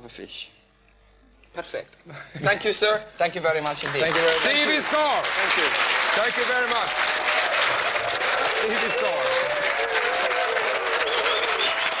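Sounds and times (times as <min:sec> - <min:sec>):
audience clapping: 0:03.6 - 0:12.0
people cheering: 0:04.0 - 0:12.0.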